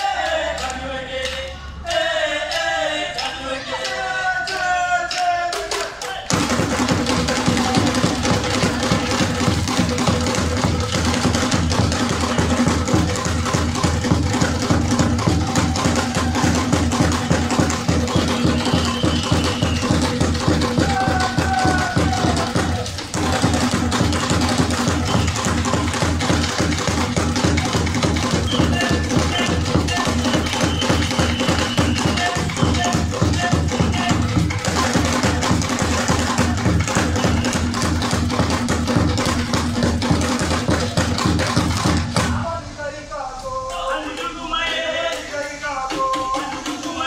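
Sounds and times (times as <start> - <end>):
sung chant: 0.0 - 9.6, 14.4 - 26.8, 28.0 - 37.8, 42.2 - 47.0
hand drums fast rhythm: 5.6 - 42.4, 44.0 - 47.0.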